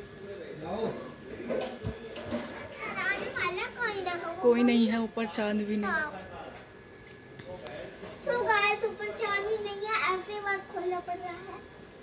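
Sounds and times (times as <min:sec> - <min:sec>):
children talking and calling: 0:01.8 - 0:04.7, 0:05.7 - 0:06.3, 0:08.1 - 0:11.8.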